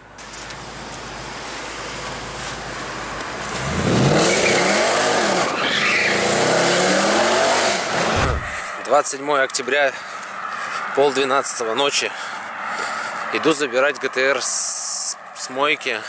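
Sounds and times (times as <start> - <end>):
road and wind noise: 0.0 - 16.0
car engine revving: 3.4 - 8.7.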